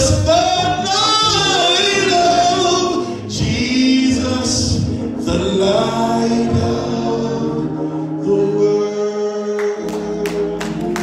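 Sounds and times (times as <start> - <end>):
man singing gospel: 0.0 - 11.0.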